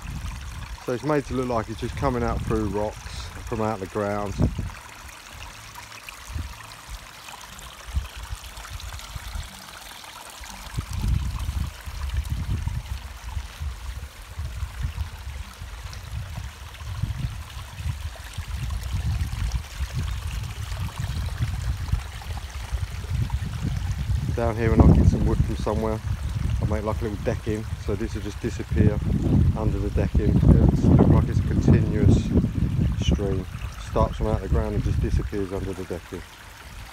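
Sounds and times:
water trickling over stones: 0.0 - 36.9.

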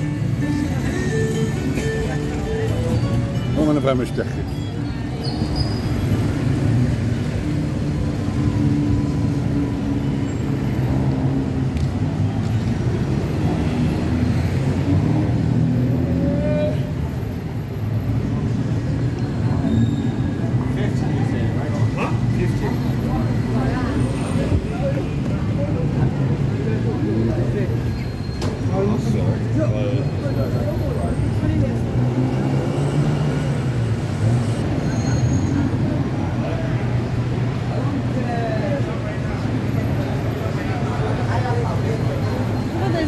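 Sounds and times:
road traffic rumble: 0.0 - 43.0.

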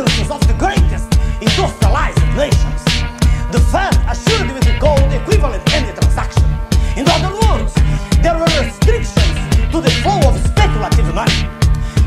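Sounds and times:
rapping over a bass-heavy beat: 0.0 - 12.0.

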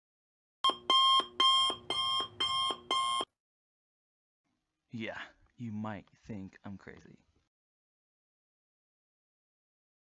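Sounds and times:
electronic alarm beeping: 0.6 - 3.3.

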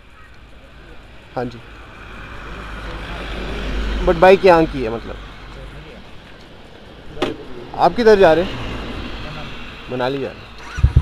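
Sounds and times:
van driving past: 0.2 - 11.0.

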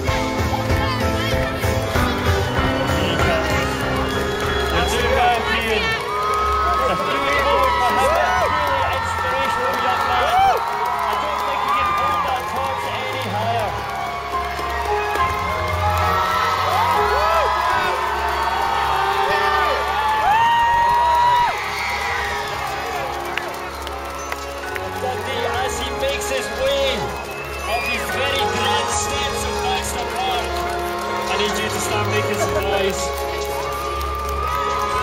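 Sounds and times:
crowd shouting and cheering: 0.0 - 35.0
high whoop: 15.5 - 23.2.

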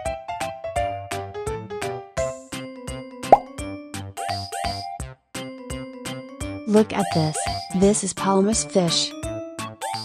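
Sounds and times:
bright children's background music: 0.0 - 10.0.

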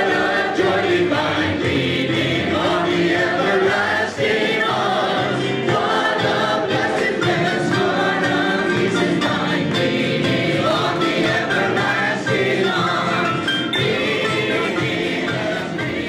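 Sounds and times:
group singing praise song: 0.0 - 16.0
keyboard: 0.0 - 16.0.

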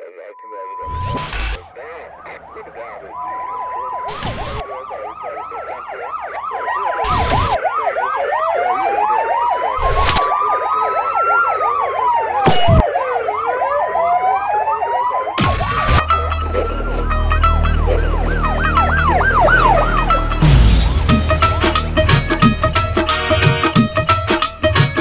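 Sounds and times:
yelp siren: 1.5 - 20.4
wailing siren: 1.6 - 25.0
deep bass drone: 16.0 - 23.4
ticking pattern: 20.2 - 25.0
sharp hits: 20.4 - 23.9.

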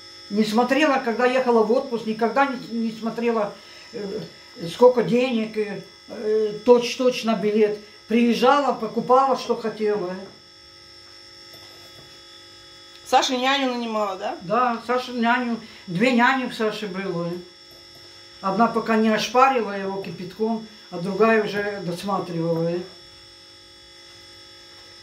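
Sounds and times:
electrical hum: 0.0 - 25.0
faint high whine: 0.0 - 25.0.

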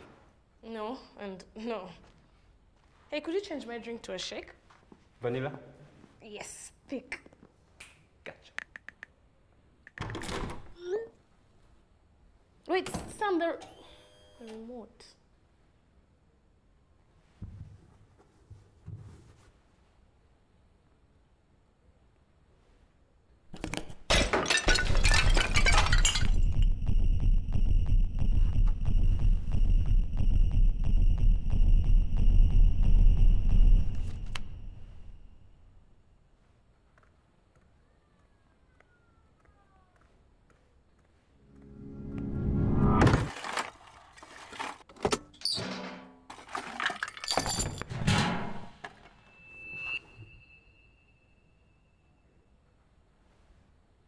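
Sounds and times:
pieces dropped into metal bin: 23.6 - 26.5, 44.4 - 49.1
broken pieces clinking: 23.6 - 26.6, 46.3 - 47.9
ceramic vase smashing on tile: 23.6 - 26.6, 45.5 - 48.2
deep low rumble: 25.1 - 35.3
steady high ringing tone: 26.2 - 35.9, 49.2 - 52.8
thin high steady tone: 49.2 - 52.6.

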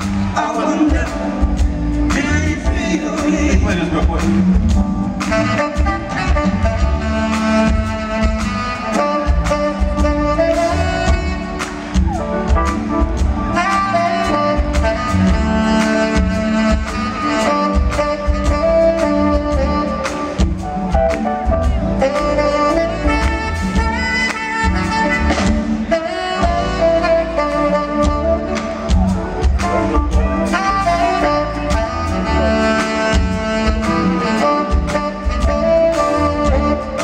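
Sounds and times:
bass: 0.0 - 37.0
drums: 0.0 - 37.0
funk band playing: 0.0 - 37.0
tenor saxophone lead: 0.0 - 37.0.

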